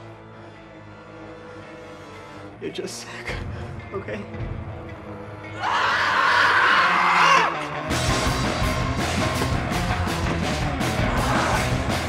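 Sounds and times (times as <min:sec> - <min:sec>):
film music: 0:00.0 - 0:12.0
zombie shrieking: 0:05.6 - 0:07.6.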